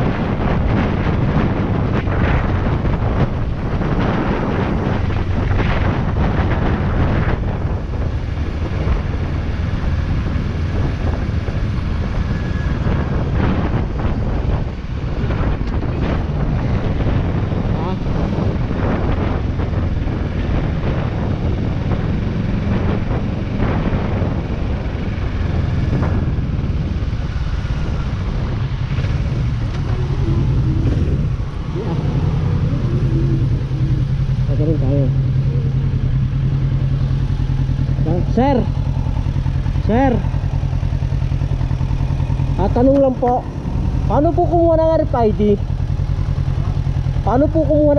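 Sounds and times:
motorcycle engine running: 0.0 - 47.9.

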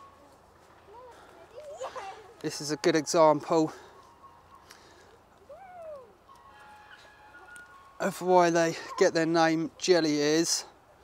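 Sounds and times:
faint bird call: 5.4 - 6.3.

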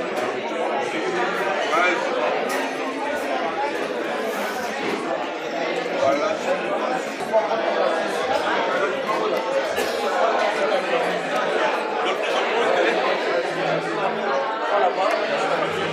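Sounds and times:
hubbub of overlapping conversation: 0.0 - 15.9.

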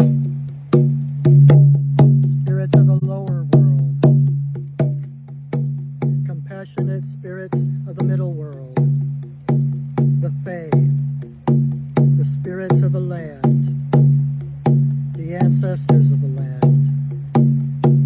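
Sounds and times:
frame drum beats: 0.0 - 18.0
man chanting: 1.7 - 4.8, 5.6 - 17.4.

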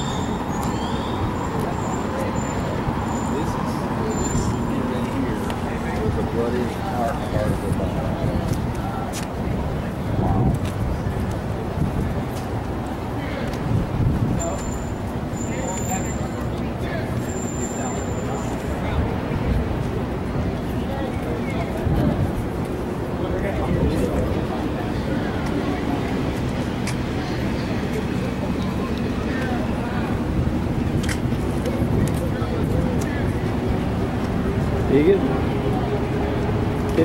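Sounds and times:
indistinct voices: 0.0 - 37.0
low rumble of city traffic: 0.0 - 37.0.

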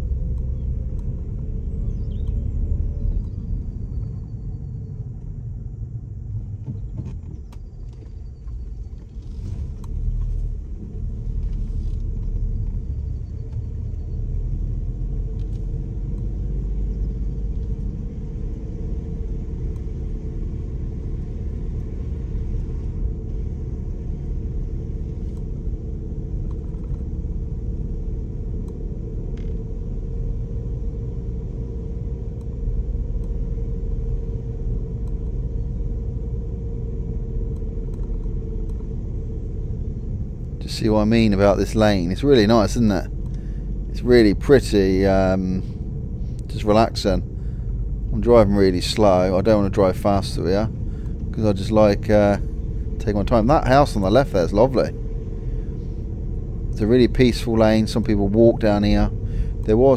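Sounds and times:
car engine and road rumble: 0.0 - 59.9
faint hum: 0.0 - 59.9
faint clicks: 37.5 - 38.9.

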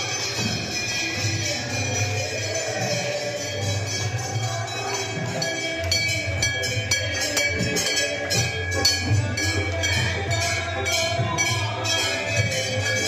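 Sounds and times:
brass bells ringing: 0.0 - 13.0.

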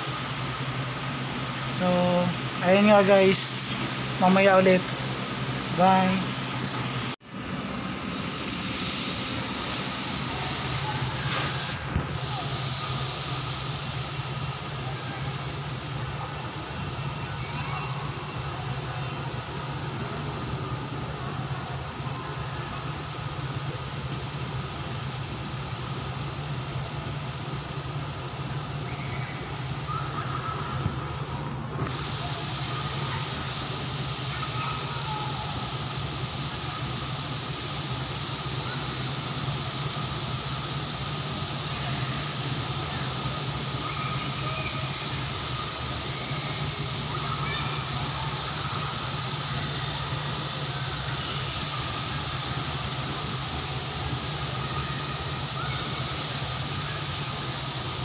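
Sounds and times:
low mechanical hum: 0.0 - 58.0
faint distant voices: 9.3 - 58.0.

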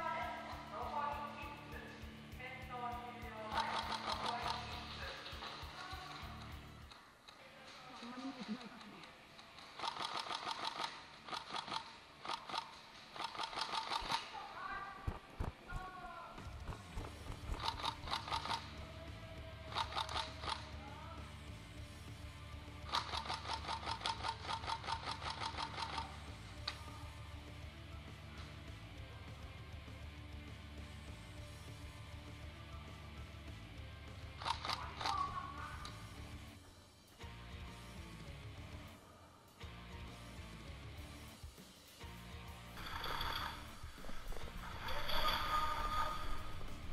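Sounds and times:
background music: 0.0 - 46.9
airsoft guns firing full-auto bursts: 9.8 - 14.2, 16.8 - 18.8.

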